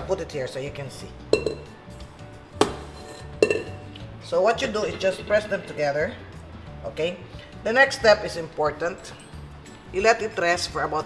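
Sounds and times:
metal bowl clanking: 0:01.2 - 0:02.0, 0:02.6 - 0:06.4.

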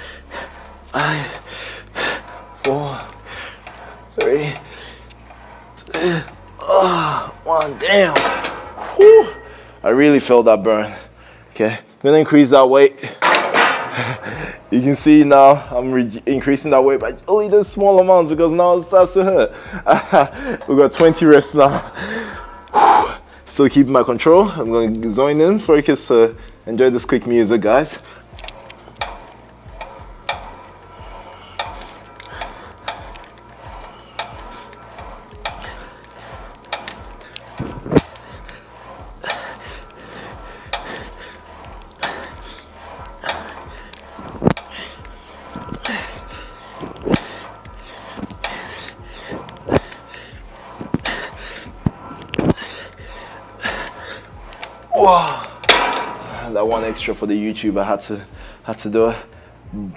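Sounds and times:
faint background music: 0:00.0 - 0:59.9
weight stack clinking: 0:13.2 - 0:14.2, 0:28.4 - 0:56.6.

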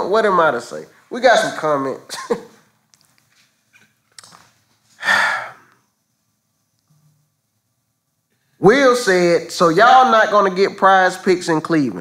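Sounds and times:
man's breathy exhale: 0:05.0 - 0:05.7.

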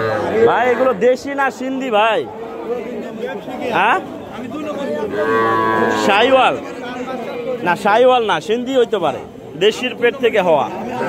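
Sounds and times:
calf mooing: 0:05.0 - 0:06.4.

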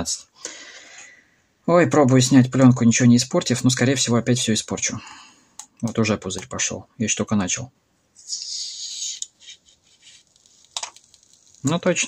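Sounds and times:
plastic film peeling off screen: 0:09.4 - 0:12.0.

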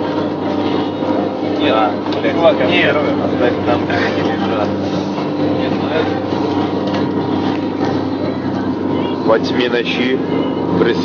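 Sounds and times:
indistinct passenger voices: 0:00.0 - 0:11.0
vehicle engine drone: 0:00.0 - 0:11.0.

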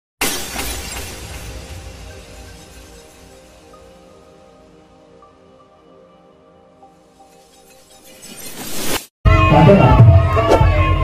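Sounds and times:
glass shattering crash: 0:00.2 - 0:04.1, 0:07.3 - 0:09.1.

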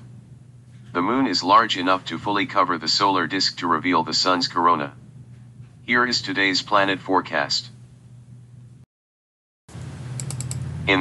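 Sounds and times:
low recording hum: 0:00.0 - 0:08.9, 0:09.7 - 0:11.0.

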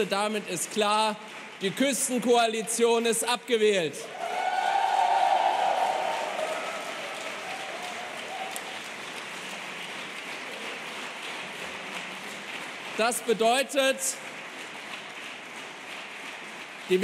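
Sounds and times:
audience applauding: 0:00.0 - 0:03.2, 0:04.0 - 0:17.0.

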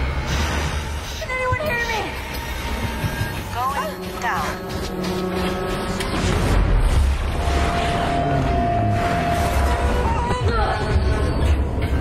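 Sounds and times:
trailer music bed: 0:00.0 - 0:12.0.

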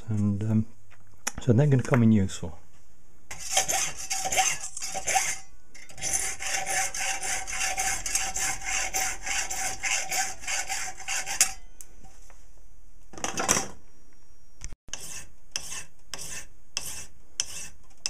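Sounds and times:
hand file stroking brass: 0:03.3 - 0:11.6, 0:14.9 - 0:17.8.

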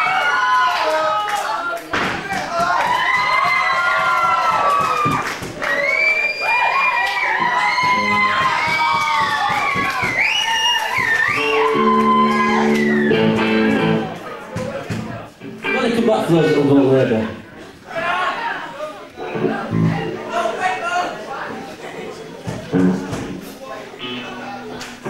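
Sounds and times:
audience cheering and whistling: 0:02.8 - 0:14.1
electric guitar notes: 0:11.4 - 0:14.2, 0:15.4 - 0:17.3, 0:19.2 - 0:20.4, 0:24.0 - 0:25.0.

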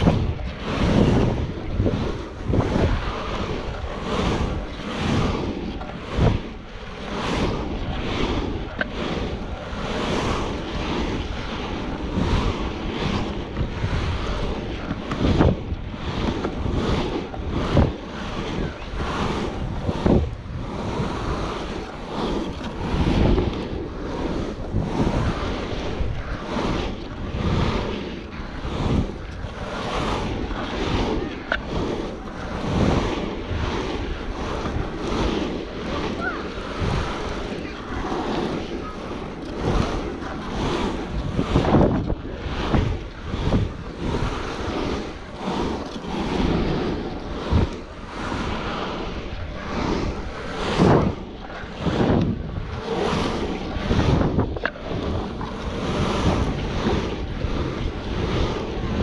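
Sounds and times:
wheels rumbling on asphalt: 0:00.0 - 0:59.0
wind rushing over microphone: 0:00.0 - 0:59.0.

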